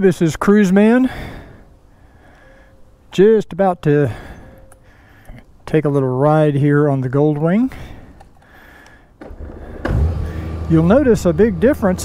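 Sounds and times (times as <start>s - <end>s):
motorcycle engine starting and idling: 9.2s - 12.0s.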